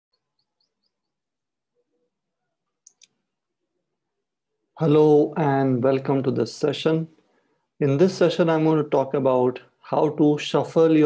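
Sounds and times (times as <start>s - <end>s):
faint clicks: 2.8s - 3.2s.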